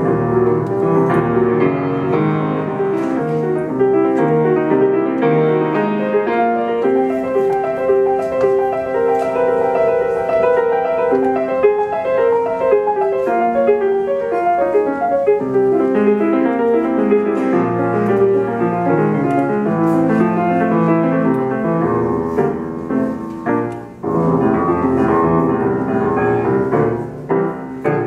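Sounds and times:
grand piano fast runs: 0:00.0 - 0:28.0.

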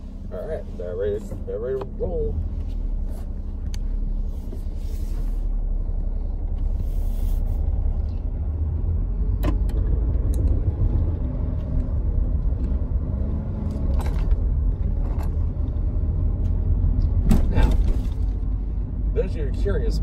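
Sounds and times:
car engine rumble: 0:00.0 - 0:20.0
road noise inside car: 0:00.0 - 0:20.0.

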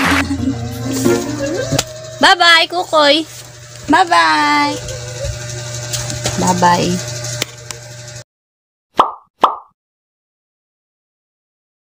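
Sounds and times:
cartoon plop pops: 0:09.0 - 0:09.8.

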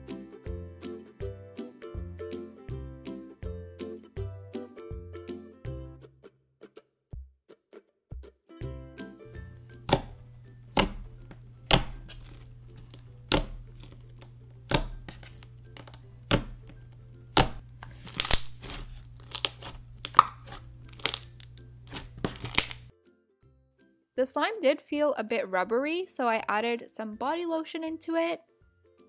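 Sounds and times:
sticky slime pops and crackles: 0:11.7 - 0:13.9, 0:17.3 - 0:22.9.

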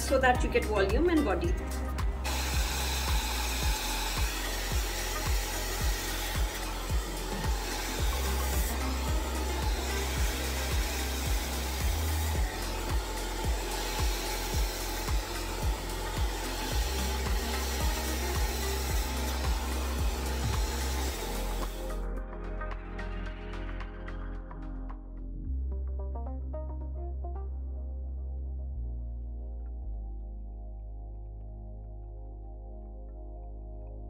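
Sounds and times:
hair dryer blowing: 0:00.0 - 0:22.0
background music with beat: 0:00.0 - 0:27.9.

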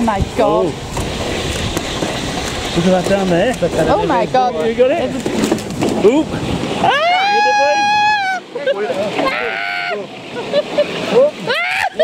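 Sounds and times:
wooden runners sliding on pavement: 0:00.0 - 0:06.9
person screaming: 0:06.8 - 0:08.4, 0:09.2 - 0:10.1, 0:11.2 - 0:12.0.

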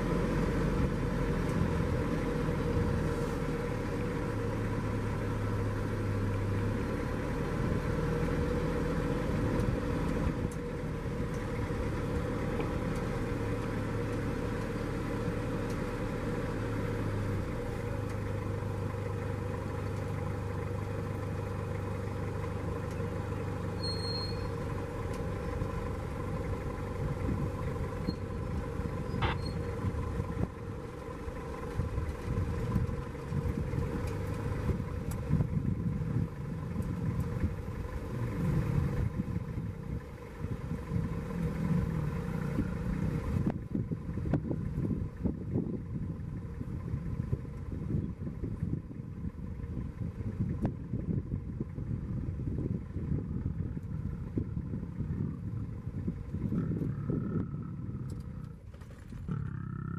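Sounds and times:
low uneven rumble of vehicle moving: 0:00.0 - 0:59.9
vehicle engine humming: 0:00.0 - 0:59.9.

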